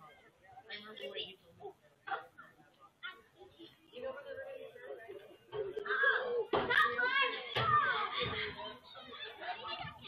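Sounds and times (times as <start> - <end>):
children talking over each other: 0.0 - 10.0.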